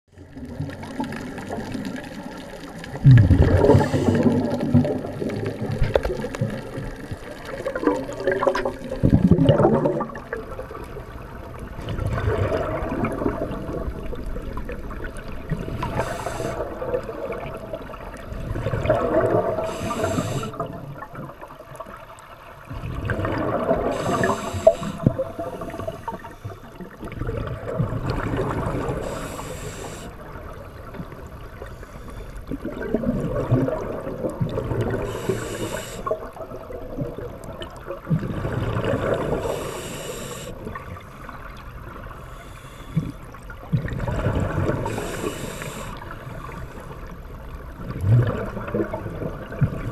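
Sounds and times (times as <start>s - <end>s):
exhaled bubbles gurgling: 0.2s - 49.9s
regulator hiss: 3.6s - 4.4s, 15.8s - 16.6s, 19.6s - 20.6s, 23.9s - 26.8s, 29.0s - 30.1s, 35.0s - 36.2s, 39.3s - 40.7s, 42.1s - 43.2s, 44.8s - 46.0s.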